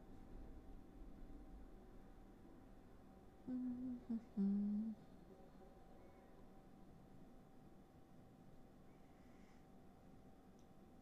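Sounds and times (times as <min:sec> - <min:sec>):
woman humming: 0:03.5 - 0:05.0.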